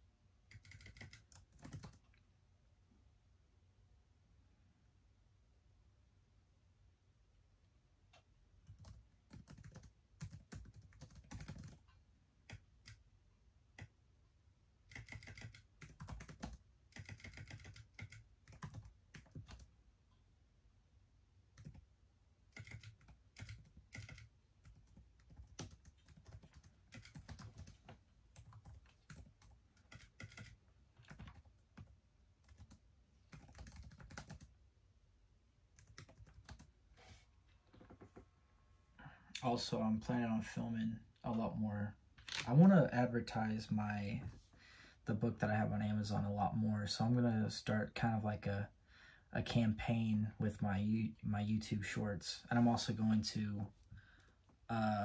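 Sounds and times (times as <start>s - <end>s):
typing on laptop keyboard: 0.5s - 2.2s, 8.6s - 13.0s, 14.9s - 19.7s, 21.6s - 21.9s, 22.5s - 34.5s, 35.8s - 36.7s.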